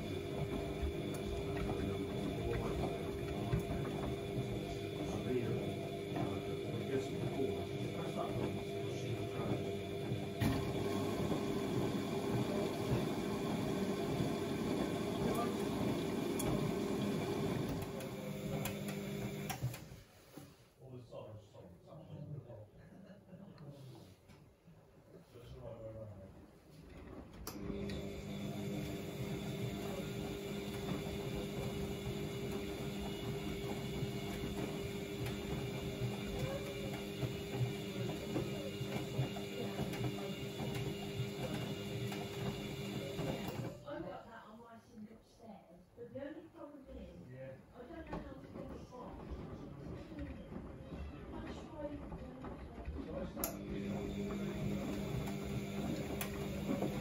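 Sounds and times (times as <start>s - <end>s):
water sloshing in washing machine: 0.0s - 19.9s, 26.8s - 43.9s, 47.8s - 57.0s
washing machine motor hum: 0.0s - 20.4s, 25.6s - 44.2s, 46.9s - 57.0s.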